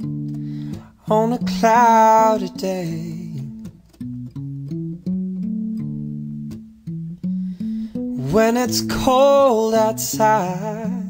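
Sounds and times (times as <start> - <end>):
soul-pop bass and guitar riff: 0.0 - 11.0.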